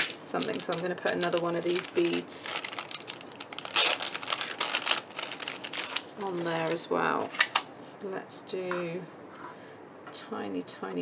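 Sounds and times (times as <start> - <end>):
cellophane packet crinkling: 0.1 - 7.7.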